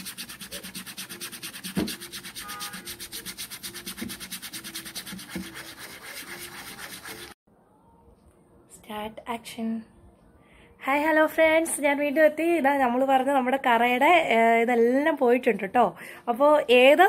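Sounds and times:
toothbrush scrubbing wet cloth: 0:00.0 - 0:07.4.

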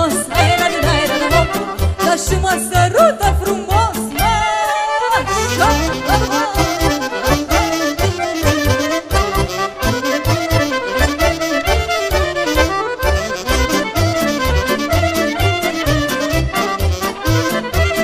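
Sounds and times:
fast ornamented lead melody: 0:05.1 - 0:18.0.

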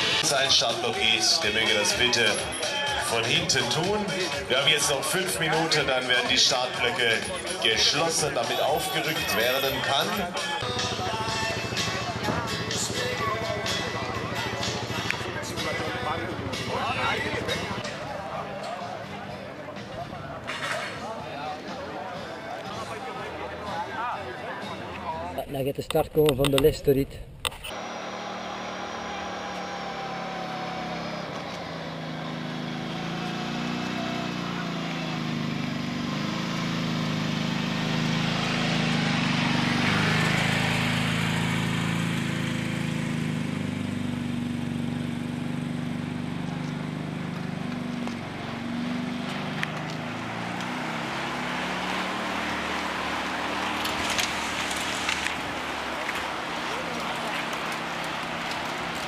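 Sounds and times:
riders' voices: 0:00.1 - 0:27.8, 0:53.0 - 0:59.0
bike tyre noise: 0:46.5 - 0:59.0.

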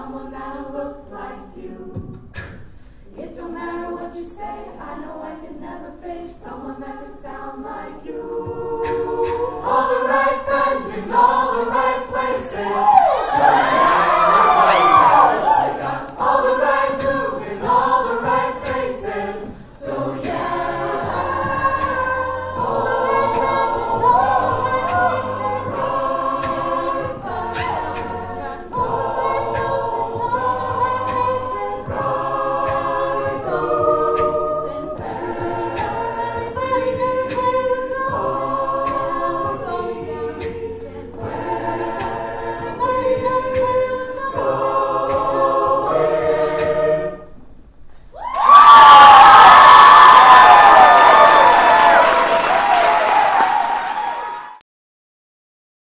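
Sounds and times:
a cappella group singing: 0:00.0 - 0:47.7
percussive beat sounds: 0:01.9 - 0:02.8, 0:08.1 - 0:46.8.

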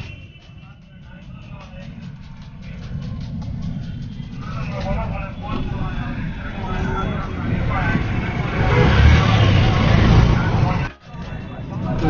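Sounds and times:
street traffic rumble: 0:00.0 - 0:12.0
voices: 0:00.0 - 0:12.0.

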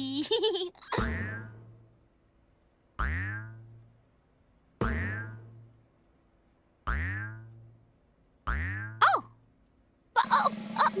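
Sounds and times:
cartoon boing: 0:00.9 - 0:01.6, 0:03.0 - 0:03.7, 0:04.8 - 0:05.6, 0:06.9 - 0:07.5, 0:08.5 - 0:09.4.

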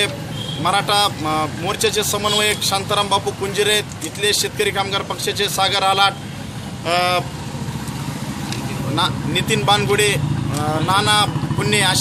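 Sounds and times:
low rumble of vehicle engines: 0:00.0 - 0:12.0.

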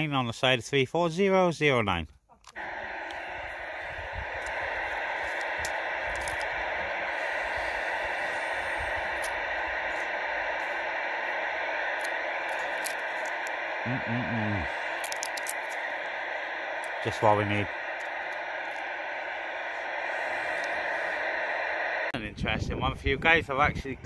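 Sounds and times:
radio static hiss: 0:02.6 - 0:24.0.

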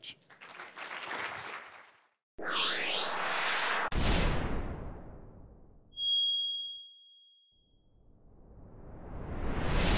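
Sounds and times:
high bell-like chime: 0:06.0 - 0:07.7.

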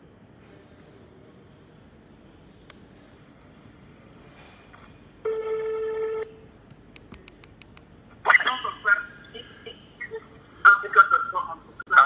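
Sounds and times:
telephone tone: 0:05.2 - 0:06.4.

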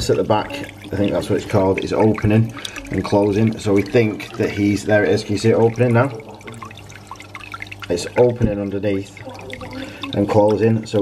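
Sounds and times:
aquarium filter hum: 0:00.0 - 0:11.0
water trickling and dripping: 0:00.0 - 0:11.0.

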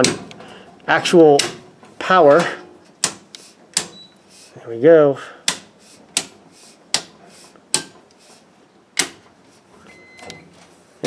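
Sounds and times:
circuit breakers clicking on: 0:00.0 - 0:04.2, 0:08.9 - 0:09.3.

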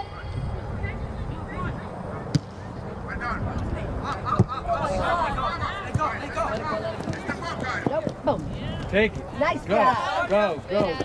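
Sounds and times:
distant players shouting: 0:00.0 - 0:11.0.

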